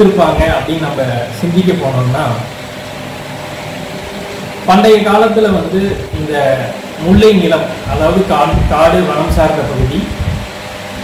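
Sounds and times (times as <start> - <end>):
man speaking: 0.0 - 2.5, 4.7 - 10.2
steady hum: 0.0 - 11.0.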